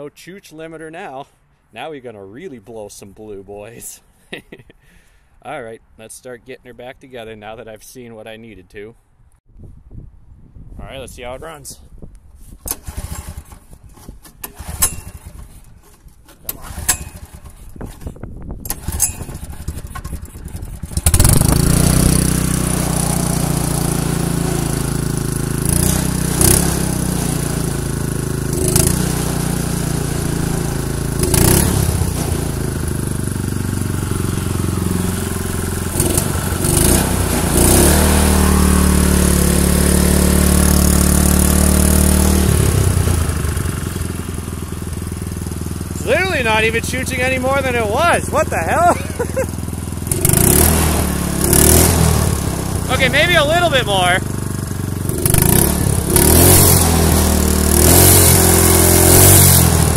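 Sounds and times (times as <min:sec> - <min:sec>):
recoil cord pull-start: 0:12.7 - 0:22.0
small engine running: 0:12.8 - 0:15.6, 0:16.5 - 0:18.0, 0:18.7 - 0:59.9.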